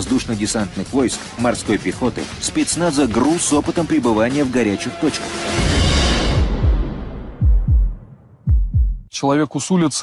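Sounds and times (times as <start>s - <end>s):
deep heartbeat thumps: 6.2s - 9.1s.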